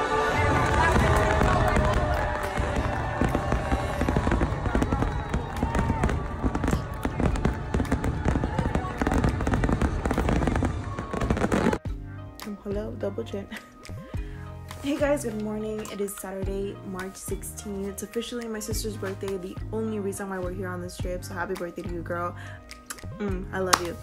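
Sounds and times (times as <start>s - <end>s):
music: 0.0s - 24.0s
fireworks bursting: 0.3s - 11.8s.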